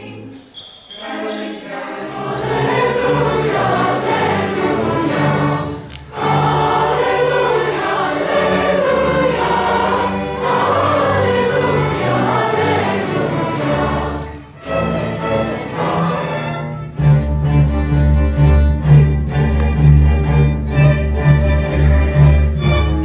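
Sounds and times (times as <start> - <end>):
choir singing: 0.0 - 17.9.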